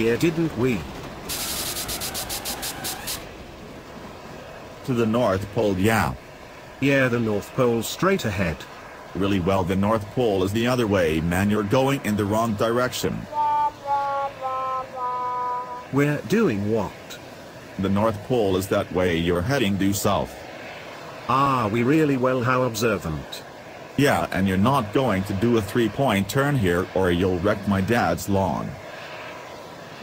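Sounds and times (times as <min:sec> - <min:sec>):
steam hissing in pulses: 0:00.0 - 0:03.4
sad trombone sound effect: 0:13.3 - 0:15.9.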